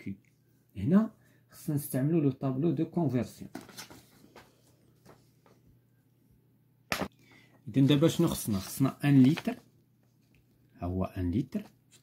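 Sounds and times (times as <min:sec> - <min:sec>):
person speaking: 0:07.6 - 0:09.8, 0:10.7 - 0:12.0.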